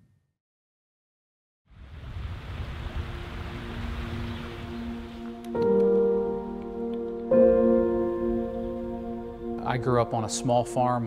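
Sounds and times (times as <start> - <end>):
soft sustained music notes: 3.0 - 11.0.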